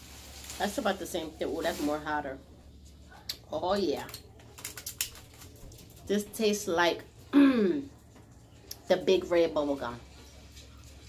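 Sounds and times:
hard candy crunching in teeth: 0:04.1 - 0:05.9.

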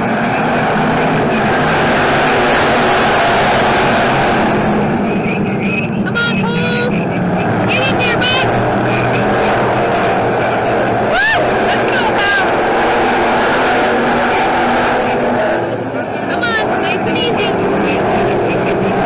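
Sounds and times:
race car engines roaring: 0:00.0 - 0:19.0
person shouting: 0:06.1 - 0:06.9, 0:11.1 - 0:12.5.

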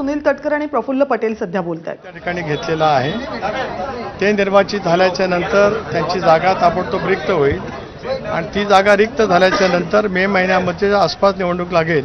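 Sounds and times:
man talking: 0:02.1 - 0:12.0.

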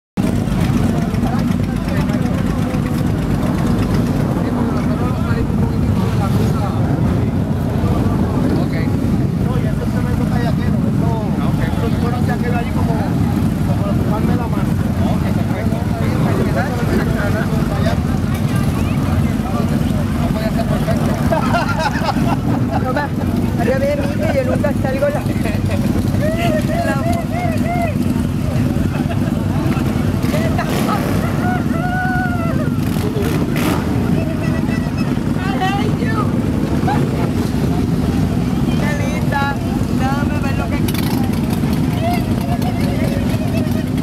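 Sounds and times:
motorcycle engines rumbling: 0:00.2 - 0:44.0
people talking: 0:00.2 - 0:44.0.

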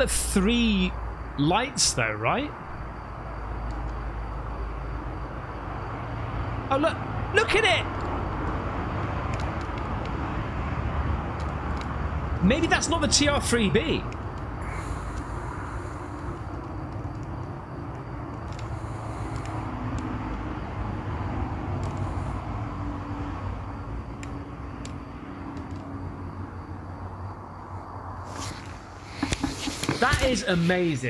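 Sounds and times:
low outdoor rumble and hiss: 0:00.0 - 0:29.1
scattered ticks: 0:03.5 - 0:06.4, 0:07.8 - 0:27.4.

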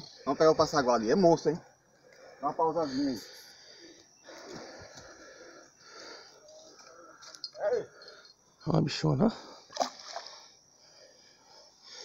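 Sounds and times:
quiet outdoor background: 0:00.0 - 0:12.0
breathy sounds close to microphone: 0:01.8 - 0:08.4.

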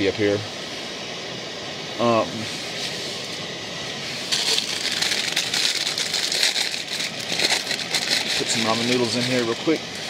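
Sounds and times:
plastic packaging crinkling: 0:04.3 - 0:09.5.

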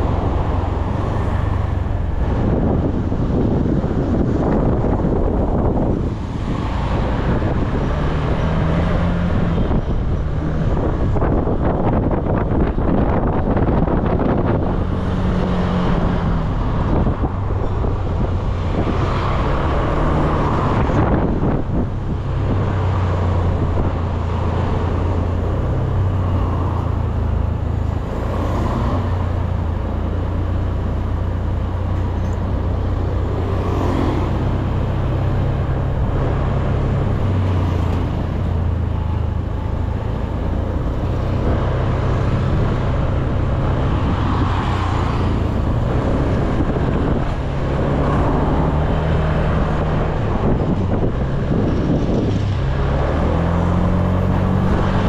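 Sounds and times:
road and wind noise: 0:00.0 - 0:55.0
surrounding traffic: 0:00.0 - 0:55.0.

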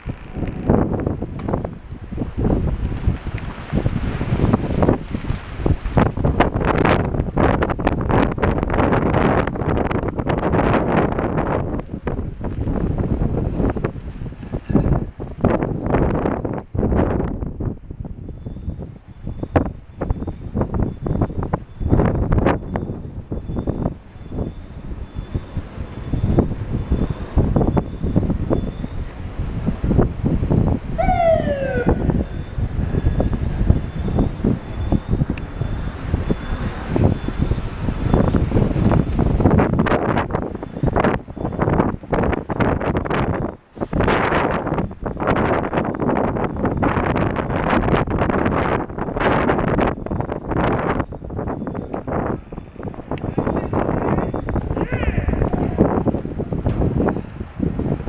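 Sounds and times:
gusty wind buffeting microphone: 0:00.0 - 0:58.0
falling pitched tone: 0:31.0 - 0:32.6.

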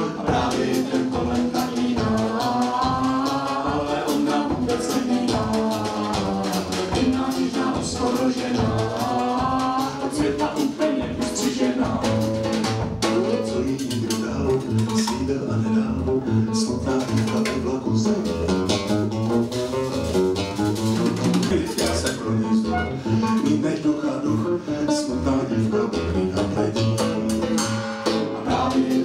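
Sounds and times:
bass line: 0:00.0 - 0:29.0
plucked guitar: 0:00.0 - 0:29.0.

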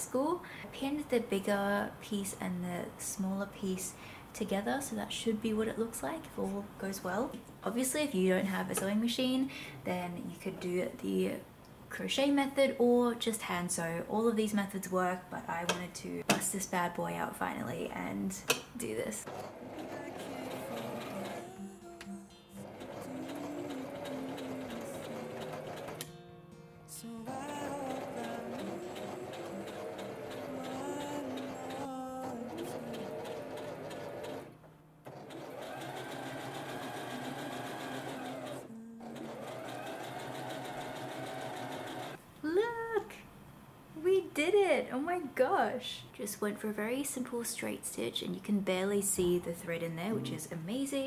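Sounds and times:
sewing machine stitching: 0:19.2 - 0:21.6, 0:22.6 - 0:26.1, 0:27.3 - 0:42.2
background music: 0:19.3 - 0:42.0, 0:50.0 - 0:50.8.

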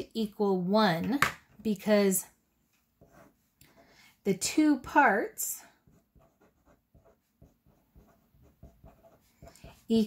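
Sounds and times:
marker writing on paper: 0:03.0 - 0:03.9, 0:05.6 - 0:10.0.

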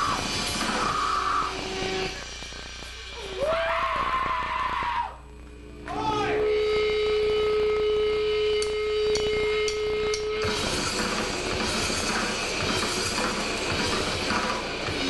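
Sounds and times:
grindcore band playing: 0:00.0 - 0:04.4, 0:08.5 - 0:15.0
guitar feedback tone: 0:05.2 - 0:11.6.

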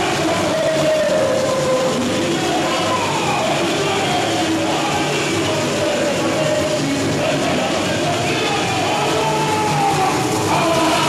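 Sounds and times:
crowd noise: 0:00.0 - 0:11.0
crowd singing: 0:00.0 - 0:11.0
samba percussion band: 0:00.0 - 0:11.0.

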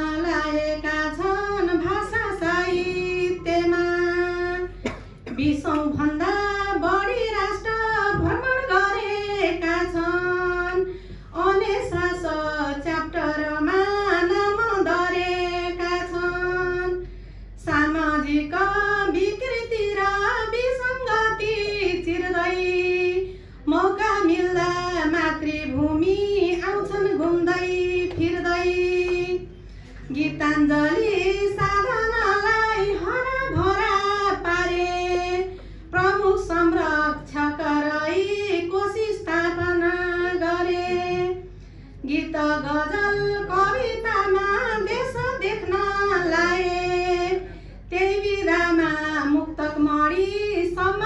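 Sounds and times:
woman singing unaccompanied: 0:00.0 - 0:17.0, 0:17.6 - 0:29.5, 0:30.1 - 0:51.0.

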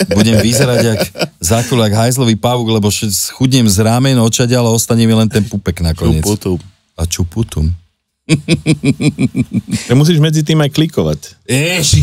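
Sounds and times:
man laughing: 0:00.0 - 0:01.8, 0:08.3 - 0:09.9.

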